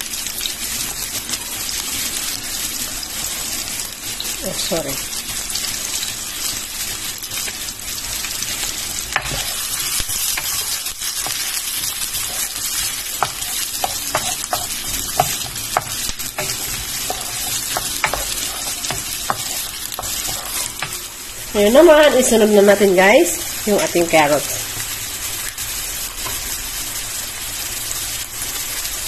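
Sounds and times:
onion sizzling in frying pan: 0.0 - 29.0
wooden spatula tapping pan: 12.2 - 21.0.

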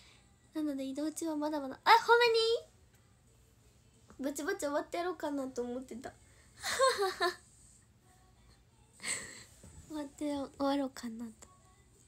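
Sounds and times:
woman speaking: 0.6 - 2.7.

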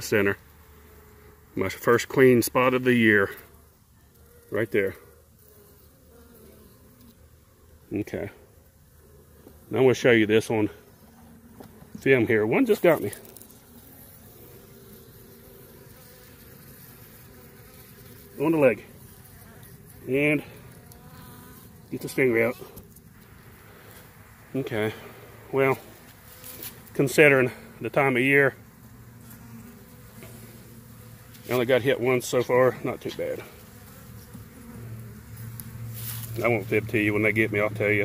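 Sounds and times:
honeybees buzzing: 0.0 - 38.0.

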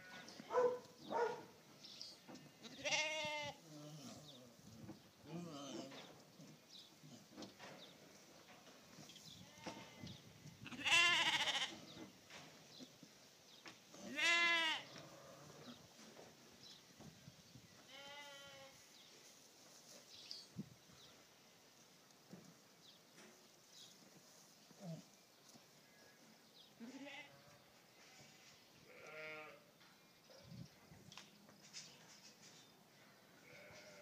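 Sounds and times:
donkey bleat-like calls: 2.7 - 3.6, 10.7 - 11.8, 14.0 - 15.6.

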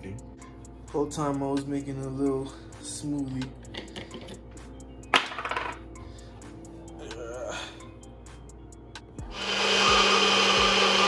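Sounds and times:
soft background music: 0.0 - 11.0
kitchen items clinking together: 5.2 - 5.8.

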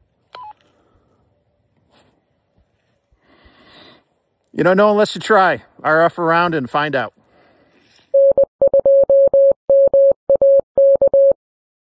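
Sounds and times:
morse code beeps: 8.1 - 11.4.

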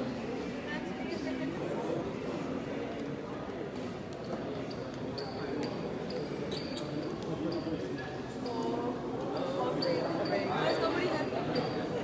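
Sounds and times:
crowd murmur in a hall: 0.0 - 12.0.

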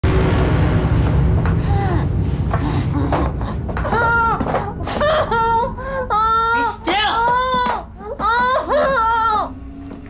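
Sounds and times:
low steady drone: 0.0 - 10.0.

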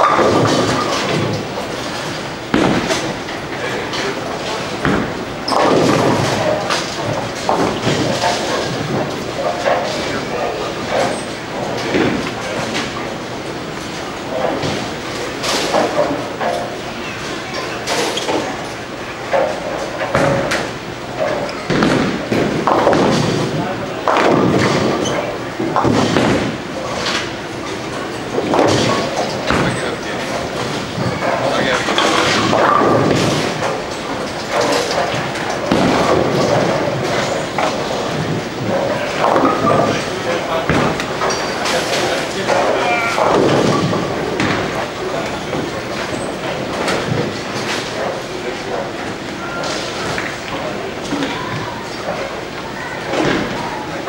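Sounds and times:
bowling balls hitting lanes and pins: 0.0 - 54.0
indistinct chatter: 0.0 - 54.0.

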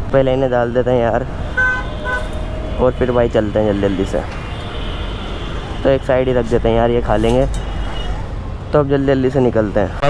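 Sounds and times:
man talking: 0.0 - 1.4, 2.7 - 4.4, 5.8 - 7.6, 8.7 - 10.0
road traffic rumble: 0.0 - 10.0.

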